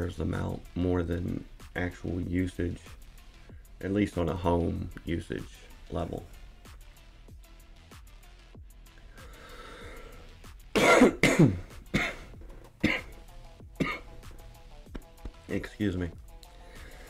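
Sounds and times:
quiet background music: 0.0 - 17.0
man coughing: 10.8 - 13.2, 13.8 - 14.2.

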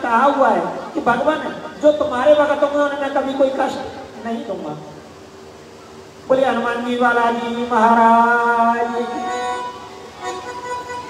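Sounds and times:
man chanting amplified: 6.3 - 9.6
harmonium held notes: 8.7 - 11.0.

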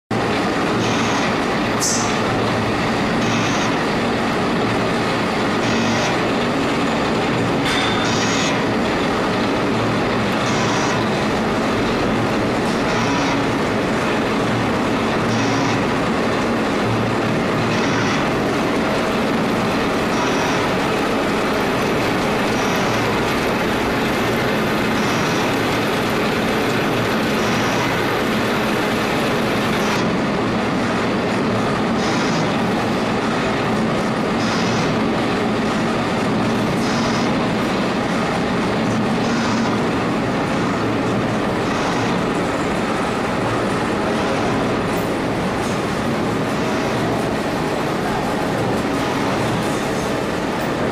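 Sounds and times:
machine tools running: 0.1 - 50.9.

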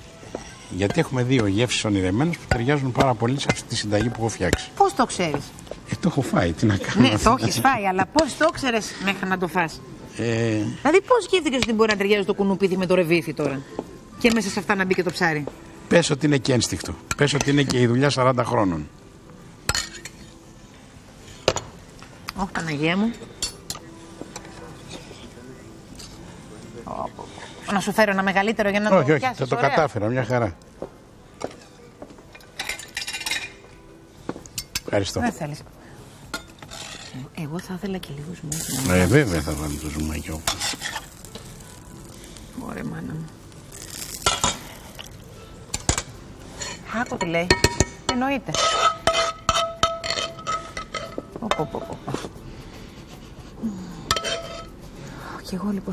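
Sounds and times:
metal utensil scraping frying pan: 0.2 - 5.1, 36.3 - 37.3, 38.6 - 41.7, 45.7 - 51.9, 54.1 - 54.8
metal utensils clinking on dish: 0.3 - 6.0, 16.0 - 18.4, 19.7 - 20.4, 22.5 - 25.3, 31.4 - 33.8, 34.5 - 35.2, 36.3 - 37.2, 43.7 - 52.3, 54.1 - 54.7
metal spoon clinking on pot: 0.5 - 4.8, 45.7 - 51.9, 54.1 - 54.7.

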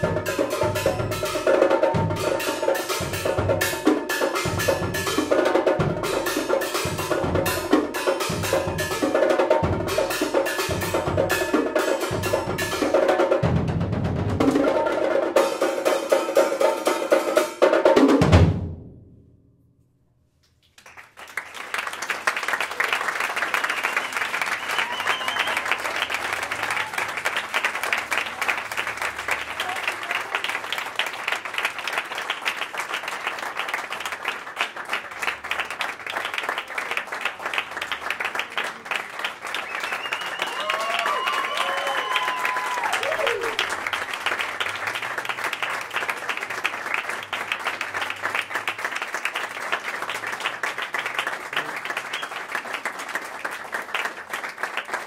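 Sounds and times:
audience applauding: 20.5 - 55.0
person shouting cheers: 40.4 - 43.6.

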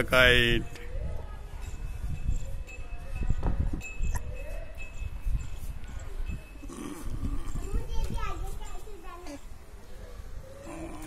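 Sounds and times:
wind rumble on microphone: 0.0 - 8.8.

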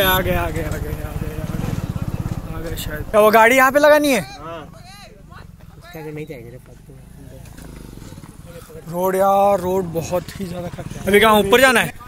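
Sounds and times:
people talking: 0.0 - 7.4, 8.4 - 12.0.

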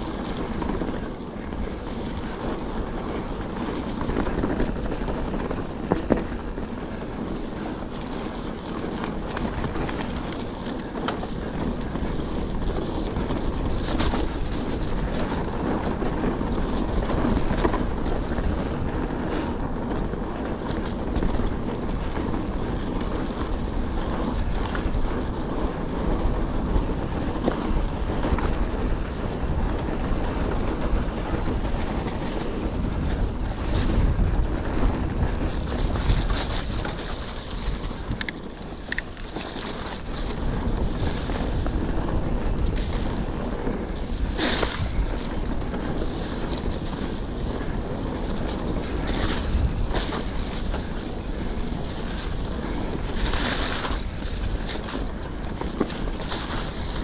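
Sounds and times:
bike clicks and rattles: 0.0 - 57.0
bike tyres rumbling on dirt: 0.0 - 57.0
wind buffeting microphone: 0.0 - 57.0.

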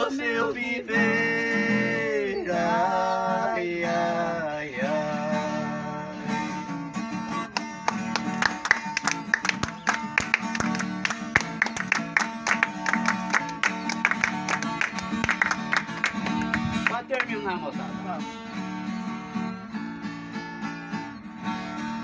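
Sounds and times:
guitar rhythmic strumming: 0.0 - 22.0.

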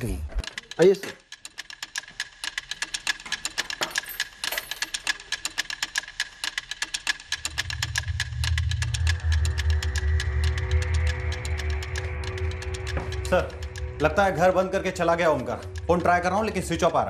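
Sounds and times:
rapid even ticking: 0.0 - 17.0
low drone: 7.4 - 17.0.

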